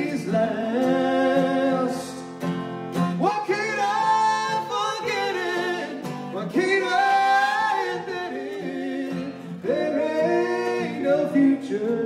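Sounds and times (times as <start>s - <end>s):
man and woman singing: 0.0s - 2.3s, 3.2s - 12.0s
strummed acoustic guitar: 0.0s - 12.0s.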